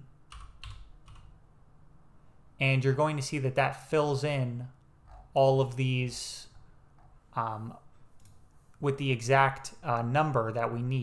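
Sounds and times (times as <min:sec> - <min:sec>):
computer keyboard typing: 0:00.3 - 0:01.4.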